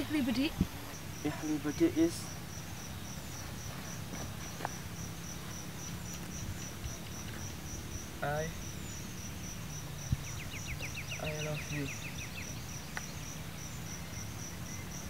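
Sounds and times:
insect chirping: 0.0s - 15.0s.

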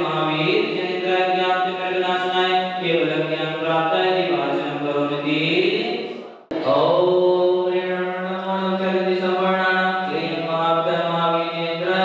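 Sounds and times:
slow hymn chant: 5.8s - 12.0s.

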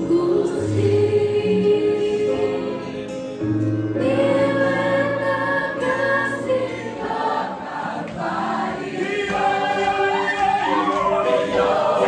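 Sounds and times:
choir singing gospel: 0.0s - 12.0s
keyboard accompaniment: 0.0s - 12.0s.

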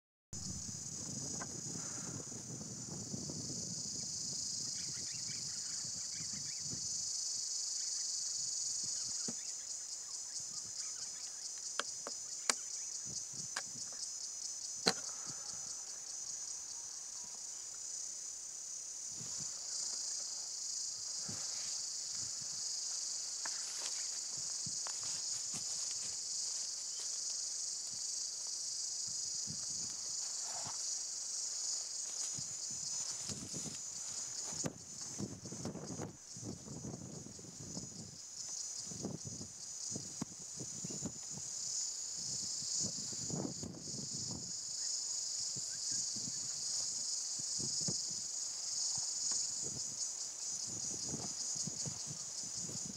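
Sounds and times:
insects trilling: 0.4s - 52.9s.

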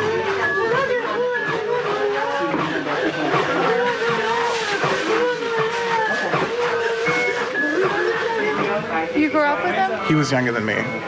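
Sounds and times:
women wailing in grief: 3.6s - 7.6s.

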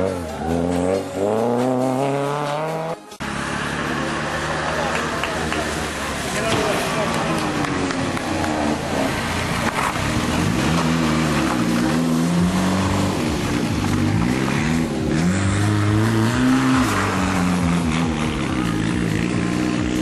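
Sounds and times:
rally car engine revving: 0.0s - 20.0s.

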